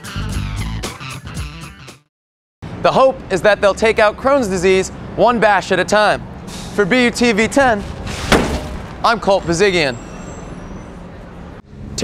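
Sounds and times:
passing traffic: 2.6s - 12.0s.

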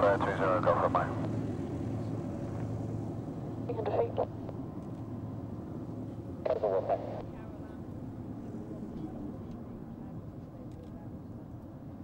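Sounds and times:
voice: 0.0s - 1.2s, 3.7s - 4.3s, 6.5s - 7.5s
aircraft engines droning: 0.0s - 12.0s.

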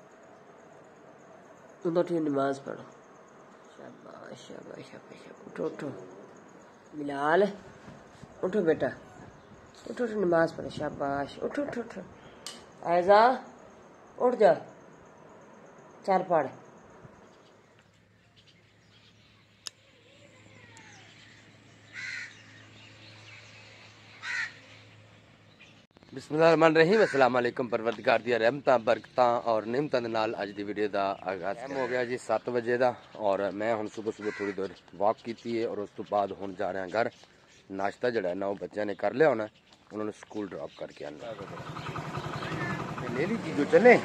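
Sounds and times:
bird calls: 0.0s - 44.0s
man speaking: 3.8s - 6.2s, 14.2s - 14.8s, 42.9s - 44.0s
motorcycle engine running: 41.2s - 44.0s.

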